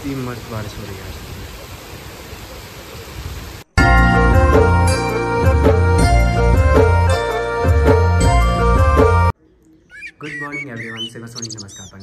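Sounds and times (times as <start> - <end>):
heavy rain hissing: 0.0 - 3.8.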